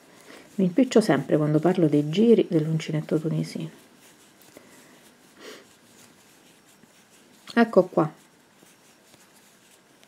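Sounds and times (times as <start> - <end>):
soft breath through the nose: 0.0 - 0.6, 4.1 - 7.1.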